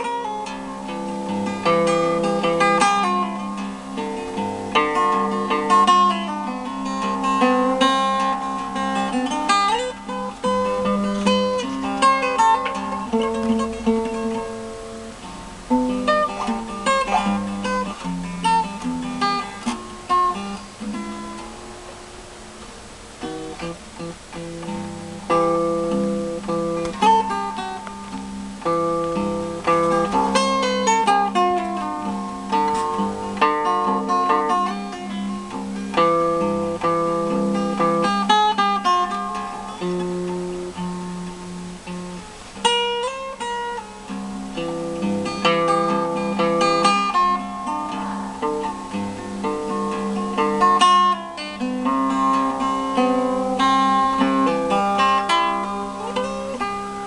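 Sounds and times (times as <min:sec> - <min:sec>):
fingerpicked acoustic guitar blues: 0:00.0 - 0:57.0.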